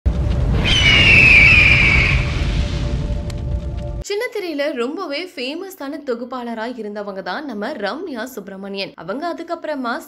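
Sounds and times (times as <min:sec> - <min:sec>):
loud deep rumble: 0:00.1 - 0:04.0
high screech-like gliding tone: 0:00.6 - 0:02.6.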